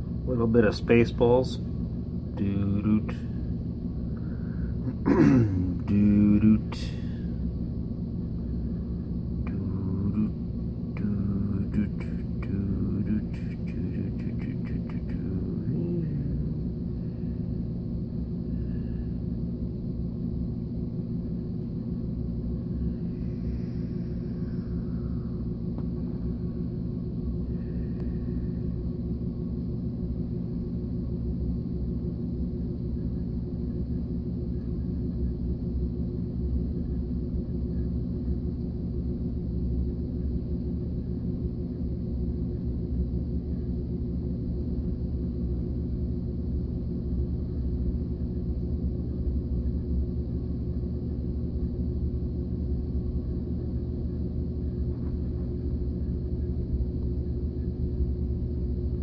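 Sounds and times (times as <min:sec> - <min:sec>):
low mechanical hum: 0:00.0 - 0:59.0.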